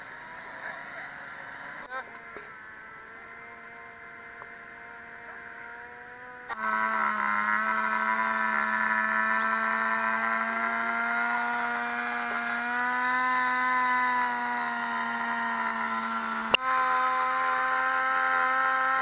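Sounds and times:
small petrol engine running: 0.0s - 19.0s.

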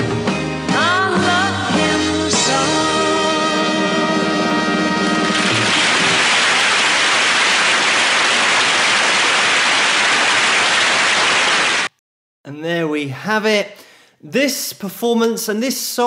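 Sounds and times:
audience applause: 5.3s - 11.9s.

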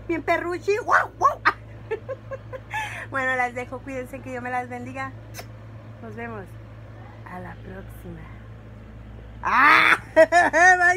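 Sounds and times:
woman laughing: 1.2s - 3.1s, 9.4s - 10.9s
woman squealing: 9.4s - 10.8s.

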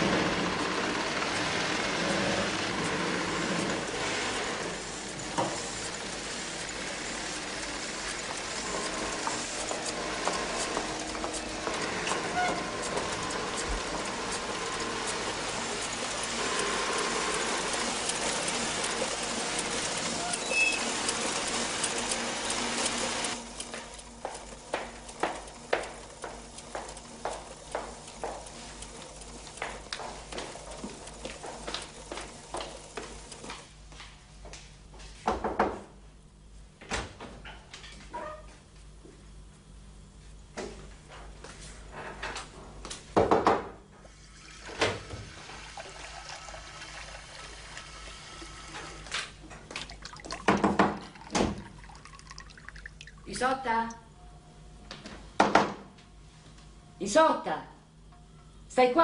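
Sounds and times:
machinery running: 0.0s - 33.6s
footsteps clicking on hard floor: 23.7s - 28.8s, 29.4s - 35.2s.

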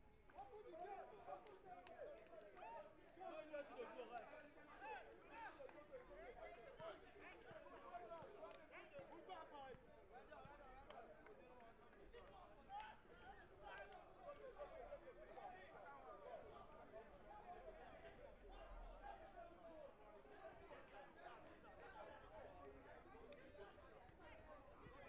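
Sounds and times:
young men chattering and calling: 0.5s - 25.0s.

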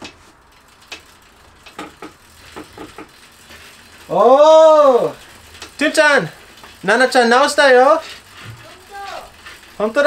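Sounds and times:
bicycle chain running: 0.0s - 10.0s
light chain clicks: 0.4s - 10.0s.

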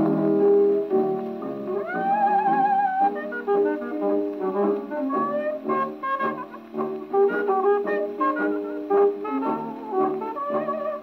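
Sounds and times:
jazz record on phonograph: 0.0s - 11.0s.

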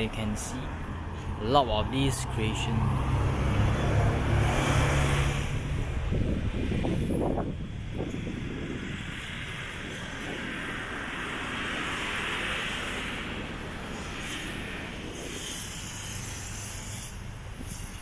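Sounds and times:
bus engine humming: 0.0s - 18.0s
traffic noise: 0.0s - 18.0s.

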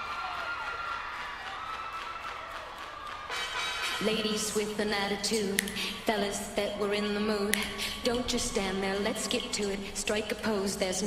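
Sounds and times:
audience cheering: 0.0s - 4.1s.

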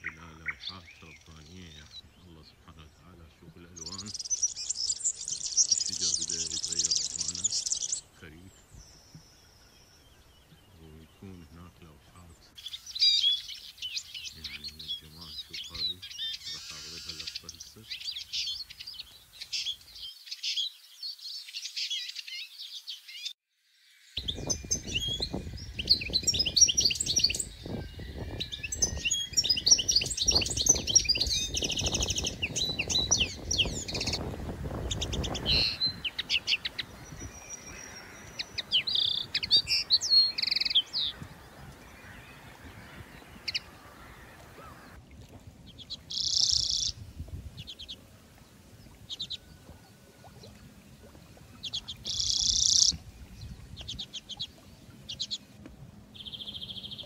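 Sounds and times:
small birds chirping: 0.0s - 23.4s, 24.1s - 45.0s, 45.6s - 57.0s.

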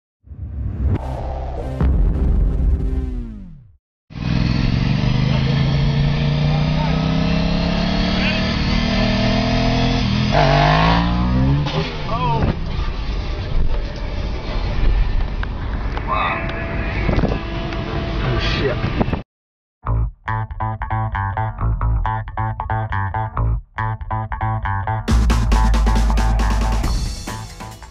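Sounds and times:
motorcycle engine at speed: 4.1s - 14.2s
road noise: 4.1s - 19.2s.

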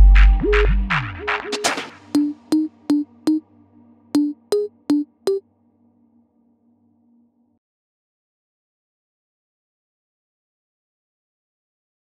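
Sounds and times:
pitched synth hits: 2.2s - 3.4s, 4.2s - 5.4s.

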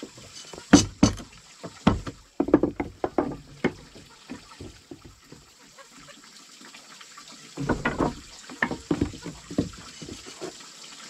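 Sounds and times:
mallet striking chisel into wood: 0.7s - 3.8s.

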